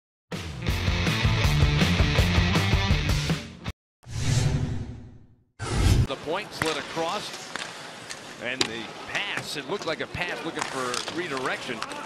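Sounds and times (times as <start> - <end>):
whoosh sound effect: 4.0 - 6.1.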